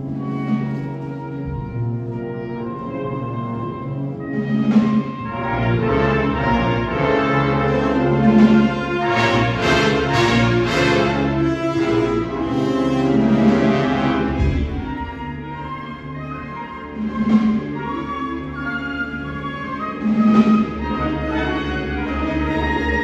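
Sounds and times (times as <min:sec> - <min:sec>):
brass ensemble chords: 0:00.0 - 0:23.0
low drums: 0:08.2 - 0:16.0.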